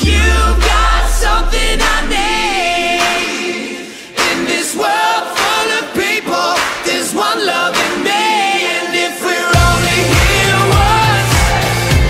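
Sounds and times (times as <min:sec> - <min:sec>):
pop song with group vocals: 0:00.0 - 0:12.0.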